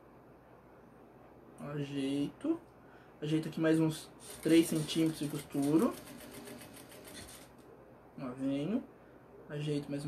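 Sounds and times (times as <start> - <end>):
sewing machine stitching: 4.2 - 7.6.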